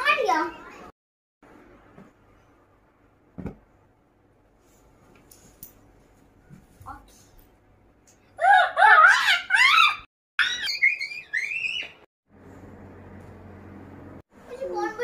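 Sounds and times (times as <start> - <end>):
high-pitched wavering cries: 8.4 - 12.0.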